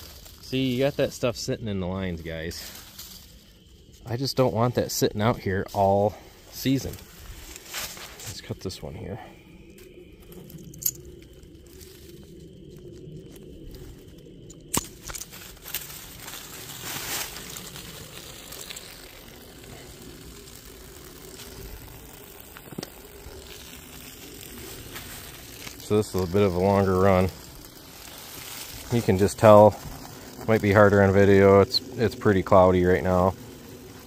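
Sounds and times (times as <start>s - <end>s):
dry leaves and twigs crunching: 0.0s - 4.1s, 5.7s - 8.5s, 9.4s - 31.6s.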